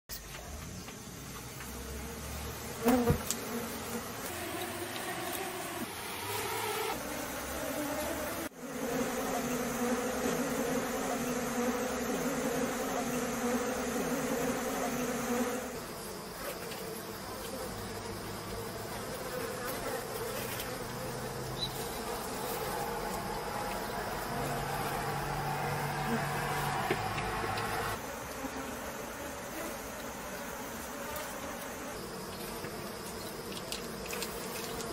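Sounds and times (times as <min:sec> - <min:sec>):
bee colony buzzing: 0:01.3 - 0:34.9.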